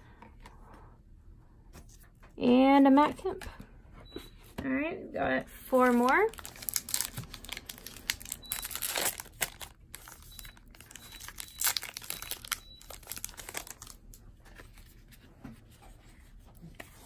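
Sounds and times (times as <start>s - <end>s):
card wrapper crinkling: 5.8s - 15.0s.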